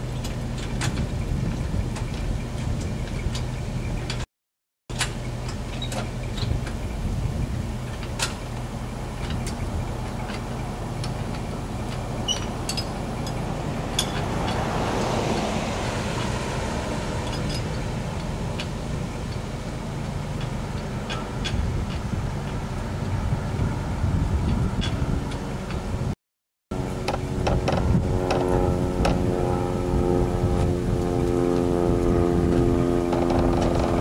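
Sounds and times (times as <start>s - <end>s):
vehicle engine idling: 5.0s - 26.0s
car passing by: 12.5s - 19.3s.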